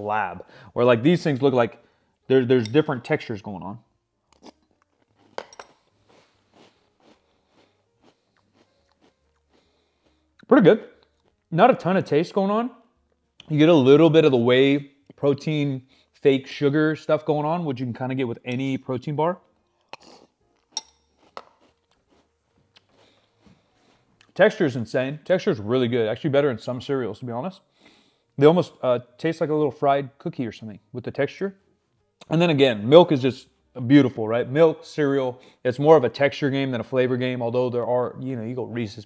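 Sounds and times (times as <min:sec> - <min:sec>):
spoon clinking against ceramic bowl: 0:05.4 - 0:05.8, 0:20.7 - 0:21.5
crunching cereal being chewed: 0:06.0 - 0:10.2, 0:19.8 - 0:24.4.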